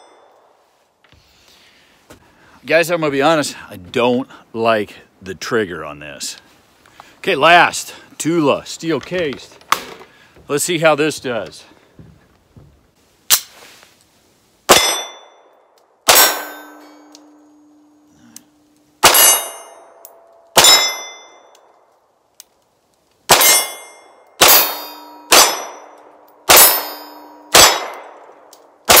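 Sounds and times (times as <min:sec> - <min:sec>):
pistol shots: 0:14.7 - 0:15.3, 0:16.0 - 0:16.8, 0:19.0 - 0:19.7, 0:20.5 - 0:21.3, 0:23.3 - 0:29.0
steel targets ringing: 0:14.7 - 0:15.5, 0:16.1 - 0:21.5, 0:23.3 - 0:28.0.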